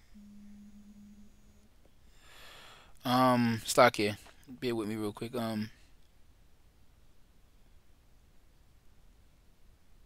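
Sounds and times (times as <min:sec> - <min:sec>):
faint steady low tone: 0:00.0 - 0:10.0.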